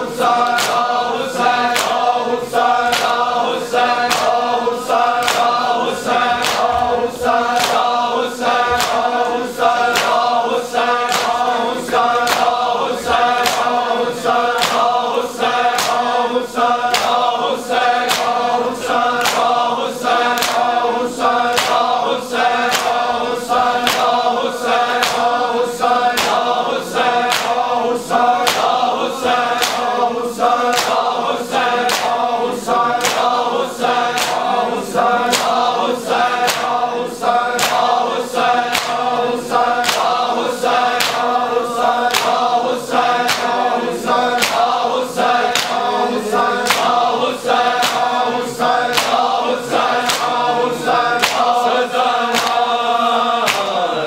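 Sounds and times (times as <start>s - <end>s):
men chanting in unison: 0.0s - 54.0s
hands slapping chests: 0.3s - 16.2s, 16.8s - 53.8s.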